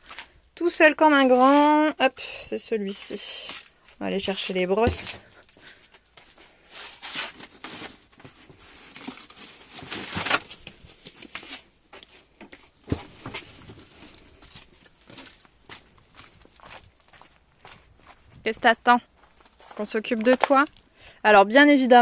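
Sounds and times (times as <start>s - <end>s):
footsteps: 3.4s - 6.5s, 12.0s - 20.9s
rustling: 4.9s - 17.4s.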